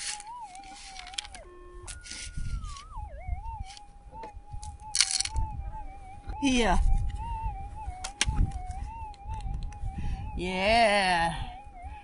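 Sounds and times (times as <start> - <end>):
stones rattling in plastic scoop: 0.0 - 1.4, 5.0 - 5.3
metal detector humming tone: 0.0 - 9.1.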